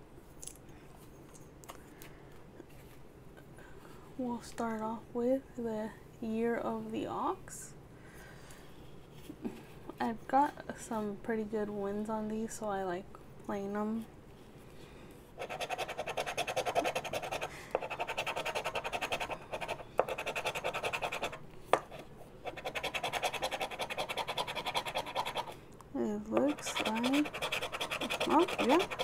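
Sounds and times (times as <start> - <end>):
rubbing scratch-off ticket: 15.4 - 21.4, 22.4 - 25.6, 26.4 - 29.0.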